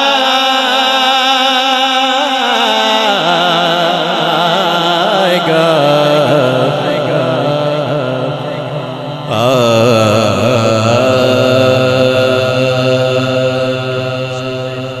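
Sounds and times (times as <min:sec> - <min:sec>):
man singing into a microphone: 0:00.0 - 0:15.0.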